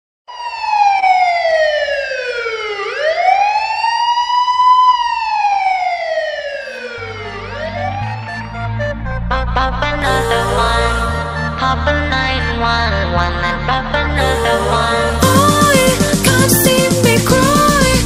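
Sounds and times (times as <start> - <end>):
police siren wailing: 0.3 - 16.7
deep bass music beat: 7.0 - 18.0.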